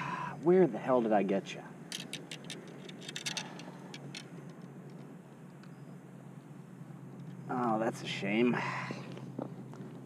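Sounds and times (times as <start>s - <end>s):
light clicks and rustles: 1.9s - 5.9s.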